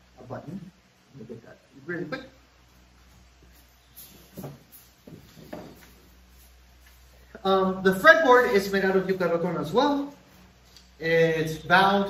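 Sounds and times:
soft knocks and shuffles: 2.8 - 7.3.

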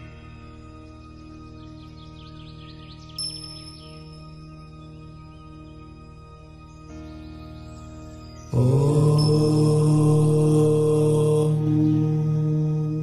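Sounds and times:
soft meditation music: 0.0 - 13.0
low voice chanting om: 8.4 - 13.0.

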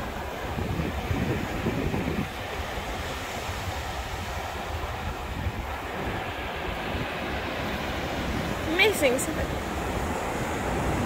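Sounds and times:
small waves washing: 0.0 - 11.0
wind noise on microphone: 0.0 - 11.0.

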